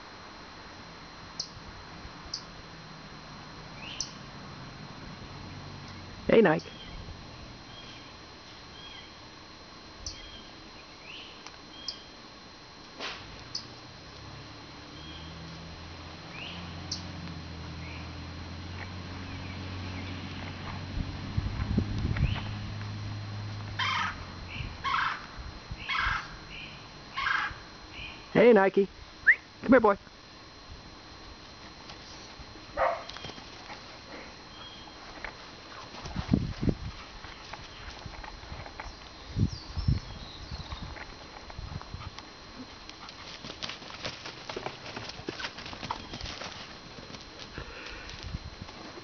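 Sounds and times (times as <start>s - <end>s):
low steady hum: 0.0s - 49.0s
high mewing calls: 14.8s - 15.5s, 23.7s - 28.3s
light footfalls on grass: 34.7s - 39.2s.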